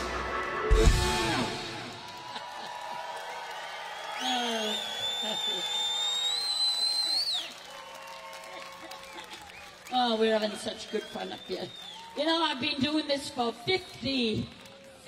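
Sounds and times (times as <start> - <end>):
audience cheering and applauding: 0.0 - 15.0
high rising whistle: 4.2 - 7.5.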